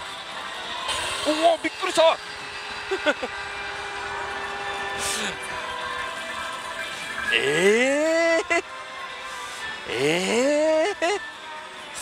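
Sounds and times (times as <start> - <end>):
man making short vocal sounds: 9.9 - 11.2.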